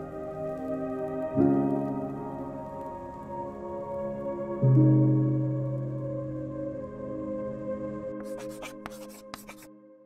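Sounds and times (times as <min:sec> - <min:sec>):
ambient music with held tones: 0:00.0 - 0:10.0
pen scratching on paper: 0:08.2 - 0:09.7.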